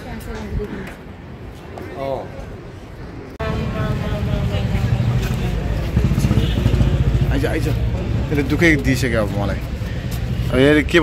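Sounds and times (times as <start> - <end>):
voices: 0.0 - 11.0.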